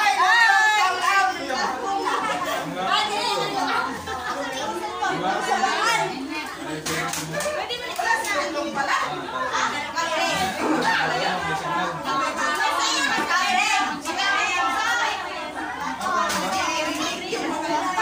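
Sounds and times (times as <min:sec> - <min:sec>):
adults talking: 0:00.0 - 0:18.0
children's voices: 0:00.0 - 0:18.0.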